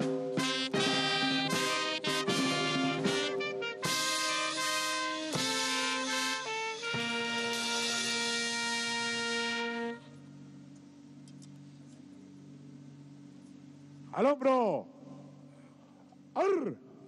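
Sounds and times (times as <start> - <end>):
brass marching band playing chords: 0.0 - 10.7
faint steady hum: 5.0 - 17.0.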